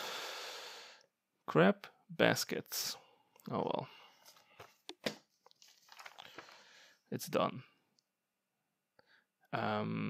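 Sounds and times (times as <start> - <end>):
paper bills rustling: 4.2 - 6.8.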